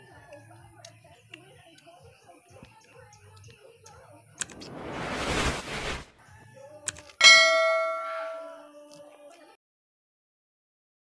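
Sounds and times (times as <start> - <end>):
bell-like ding: 7.2 - 8.7.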